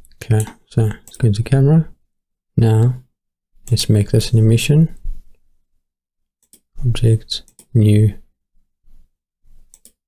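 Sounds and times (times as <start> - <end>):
computer mouse clicks: 6.4 - 6.7, 9.7 - 10.0.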